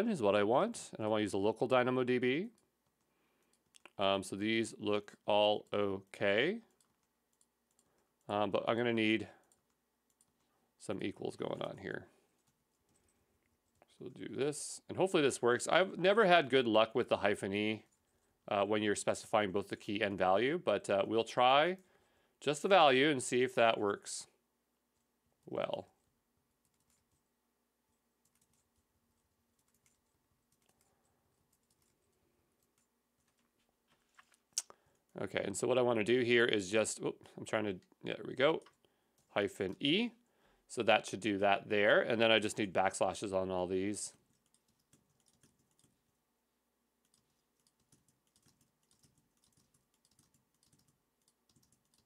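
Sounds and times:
faint keyboard typing: 1.2 - 14.4, 15.4 - 21.9, 24.9 - 40.1, 43.7 - 52.0
computer keyboard typing: 5.6 - 8.3, 9.4 - 10.5, 26.5 - 27.3, 28.2 - 33.5, 44.2 - 46.2, 47.0 - 52.0.

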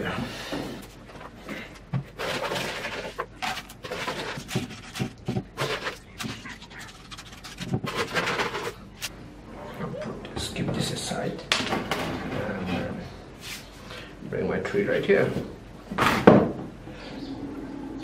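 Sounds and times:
hands working wet clay and soil: 0.0 - 9.1.

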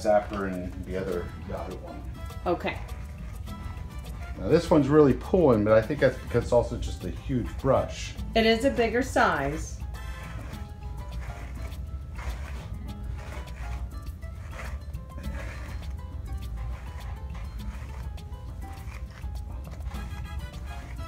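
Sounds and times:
brush raking through dog fur: 0.0 - 21.0.

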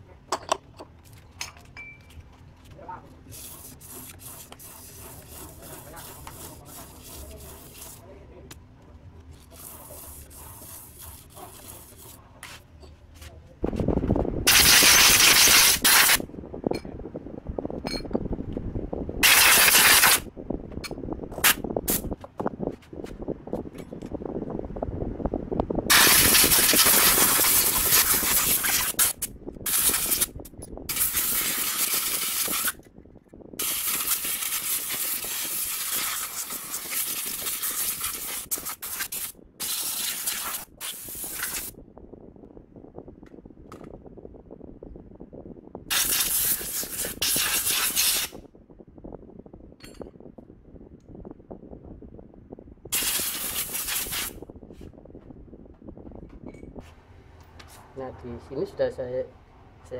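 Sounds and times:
aerosol spray hissing: 33.6 - 41.7, 45.9 - 48.3.

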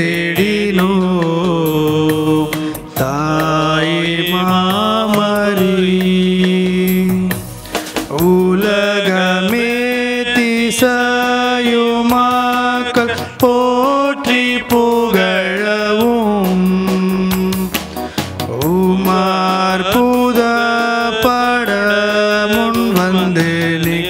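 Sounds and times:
person singing devotional hymn: 0.0 - 24.0.

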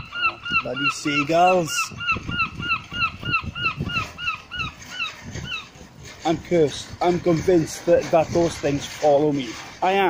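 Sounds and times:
gull calling: 0.0 - 5.8.

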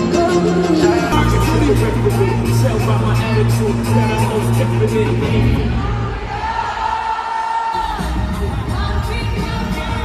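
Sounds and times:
amplified live concert music: 0.0 - 10.0
crowd noise: 0.0 - 10.0.

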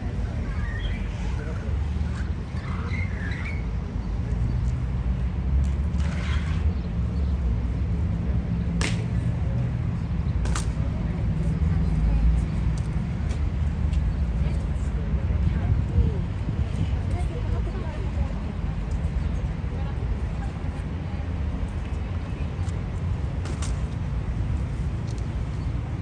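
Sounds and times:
crowd chatter: 0.0 - 26.0
low city rumble: 0.0 - 26.0.

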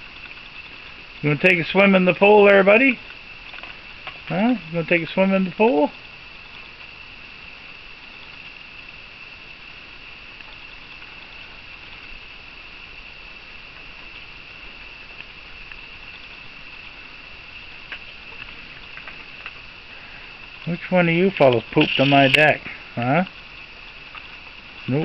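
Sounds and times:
night insects chirping: 0.0 - 25.0.

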